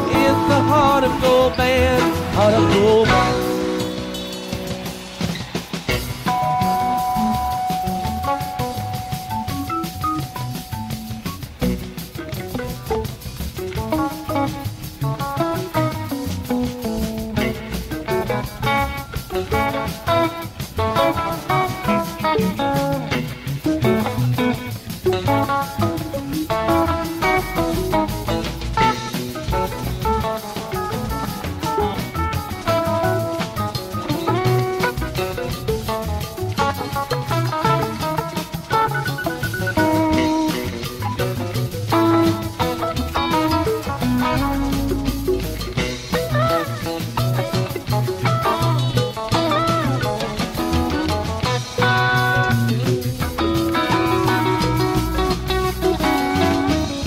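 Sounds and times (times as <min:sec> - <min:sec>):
drum kit: 0:00.0 - 0:57.0
electric lead guitar: 0:00.0 - 0:57.0.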